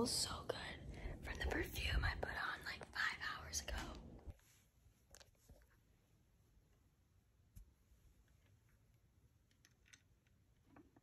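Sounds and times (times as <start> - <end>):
woman whispering: 0.0 - 4.1.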